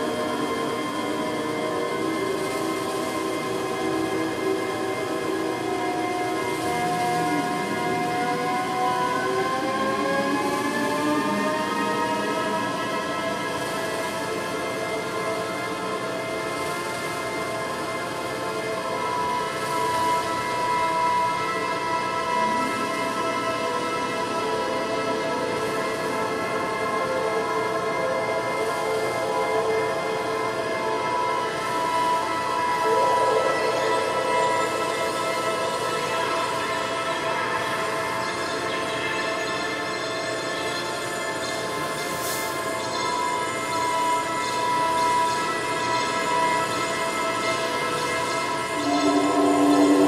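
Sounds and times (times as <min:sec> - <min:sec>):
synthesizer drone: 0:00.0 - 0:50.0.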